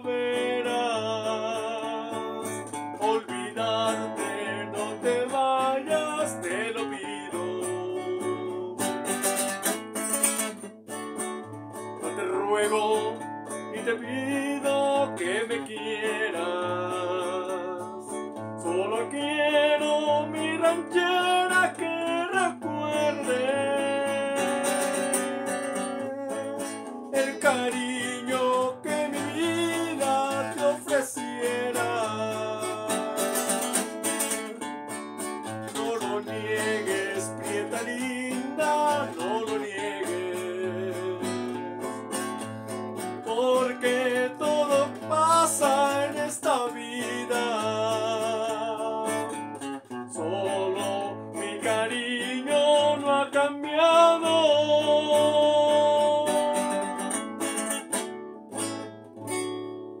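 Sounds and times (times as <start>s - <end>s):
man singing: 0.0s - 10.5s, 11.8s - 58.0s
strummed acoustic guitar: 0.0s - 60.0s.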